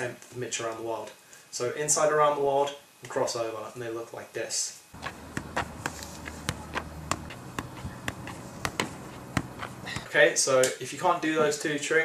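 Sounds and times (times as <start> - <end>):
ball tapping on shoe: 5.0 - 10.1
low steady hum: 5.0 - 10.2.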